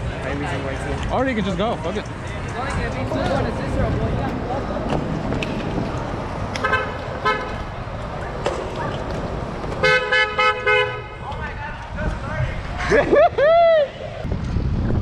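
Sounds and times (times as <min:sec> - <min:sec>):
street traffic noise: 0:00.0 - 0:15.0
car horn beeps: 0:06.6 - 0:07.6, 0:09.8 - 0:11.2.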